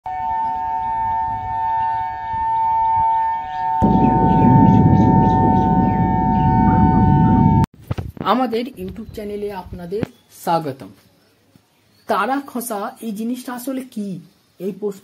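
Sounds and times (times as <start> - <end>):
siren-like two-note tone: 0.1 - 7.7
loud low rumble: 3.8 - 7.7.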